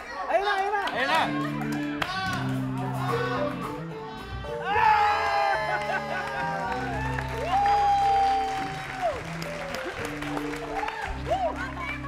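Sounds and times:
audience applause and cheering: 0.0s - 12.0s
background music with bass notes: 0.9s - 12.0s.

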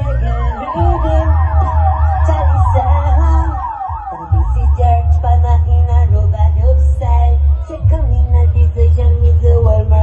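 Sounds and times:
dub siren wailing with echo: 0.0s - 6.2s
reggae tune with heavy bass: 0.0s - 10.0s.

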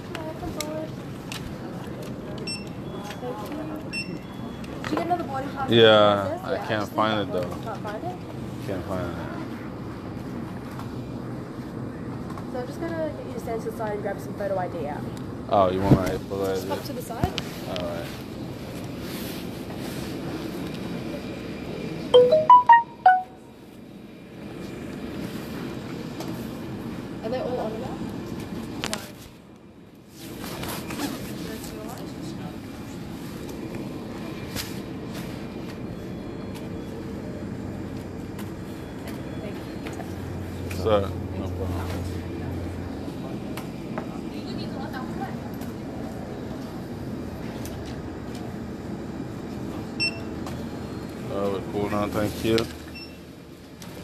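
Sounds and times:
steady background hum: 0.0s - 54.0s
electronic announcement chime: 22.2s - 23.5s.

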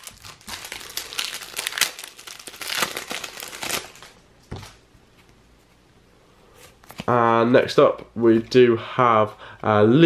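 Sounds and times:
foil packet crinkling: 0.0s - 4.2s.

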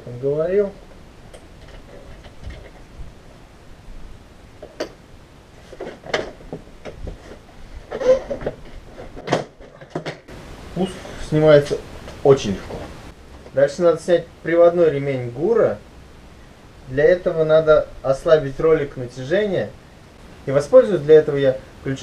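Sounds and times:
plastic knocks and rattles: 5.7s - 10.3s.

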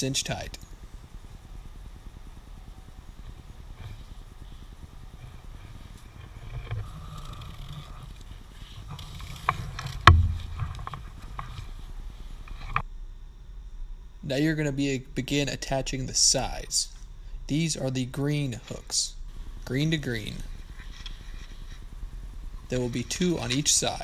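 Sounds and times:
low steady rumble: 0.0s - 24.0s.

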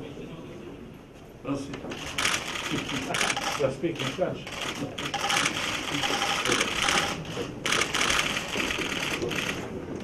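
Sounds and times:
camera shutters clicking: 1.9s - 9.6s.

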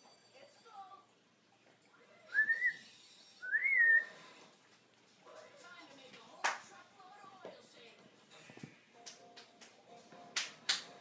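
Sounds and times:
parrot whistling: 2.3s - 4.2s.

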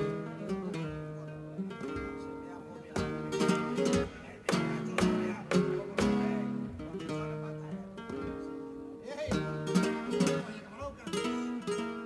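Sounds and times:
strummed acoustic guitar chords: 0.0s - 12.0s.

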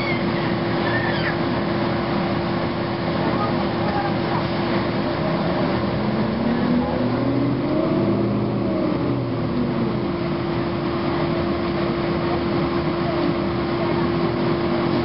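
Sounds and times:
bus diesel engine pulling: 0.0s - 15.0s
steady cabin hum: 0.0s - 15.0s.

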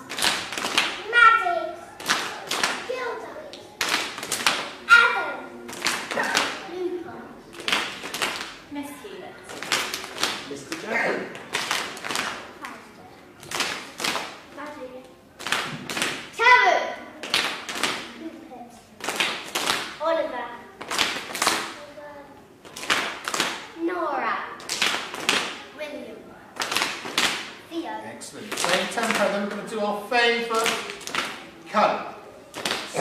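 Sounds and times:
group clapping in rhythm: 0.0s - 4.9s, 5.6s - 6.7s, 7.5s - 8.7s, 9.5s - 12.8s, 13.4s - 14.6s, 15.4s - 16.4s, 17.2s - 18.2s, 19.0s - 20.1s, 20.7s - 21.9s, 22.6s - 23.8s, 24.6s - 25.7s, 26.6s - 27.7s, 28.4s - 29.7s, 30.4s - 31.6s, 32.5s - 33.0s
child speaking: 1.0s - 2.0s, 2.8s - 3.8s, 4.8s - 5.6s, 6.3s - 7.4s, 8.7s - 9.5s, 12.6s - 13.3s, 14.5s - 15.2s, 16.4s - 17.1s, 18.1s - 18.9s, 20.0s - 20.8s, 21.7s - 22.4s, 23.8s - 24.6s, 25.7s - 26.3s, 27.7s - 28.2s.

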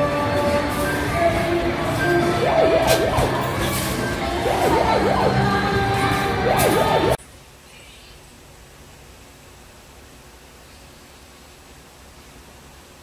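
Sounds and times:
warbling siren-like tone: 2.0s - 7.2s.

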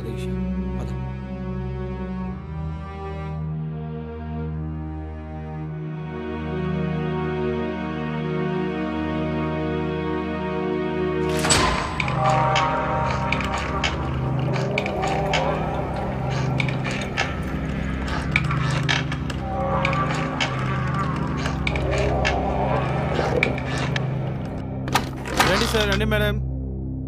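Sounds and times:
low drone: 6.0s - 25.8s
wavering eerie tones: 11.3s - 24.8s.

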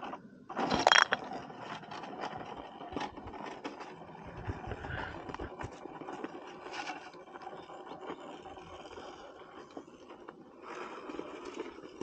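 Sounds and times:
toy car scraping against rock: 0.5s - 12.0s.

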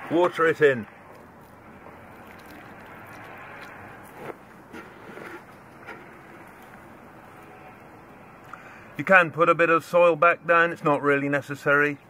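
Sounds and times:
water pouring into soil: 0.6s - 7.7s.

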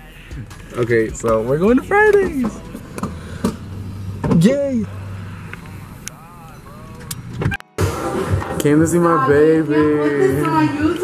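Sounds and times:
car road noise: 0.0s - 11.0s.

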